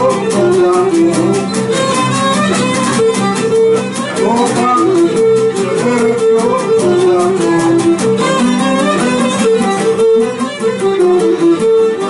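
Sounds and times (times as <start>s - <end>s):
bowed lyra melody: 0.0s - 12.0s
lutes strumming rhythm: 0.0s - 12.0s.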